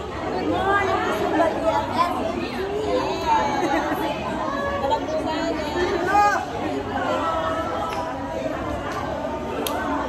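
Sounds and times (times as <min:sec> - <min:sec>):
crowd chatting: 0:00.0 - 0:10.0.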